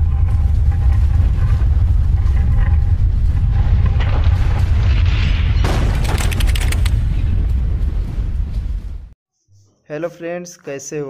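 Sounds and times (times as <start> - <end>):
deep rumble: 0.0 - 9.2.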